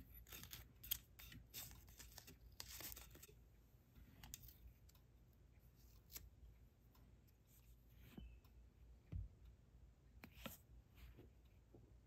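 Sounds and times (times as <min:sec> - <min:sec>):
tape crinkling and rubbing: 0:00.0 - 0:03.4.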